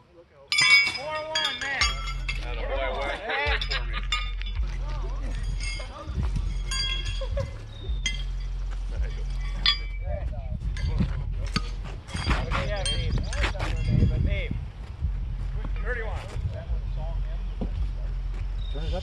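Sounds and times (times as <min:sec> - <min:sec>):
horseshoes clanging on metal: 0:00.5 - 0:14.4
steady low hum: 0:00.6 - 0:19.0.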